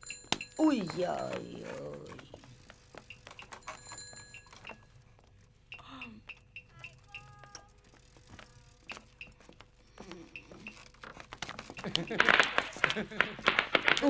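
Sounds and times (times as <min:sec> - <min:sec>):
distant firecrackers popping: 0:11.6 - 0:14.0.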